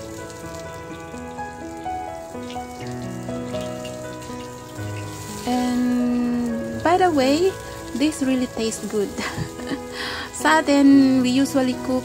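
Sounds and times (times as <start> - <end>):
background music of held notes: 0.0 - 12.0
ginger sizzling in hot oil: 0.0 - 12.0.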